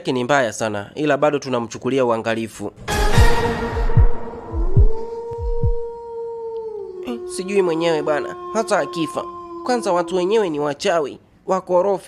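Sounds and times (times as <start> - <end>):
heartbeat thuds: 3.1 - 6.0.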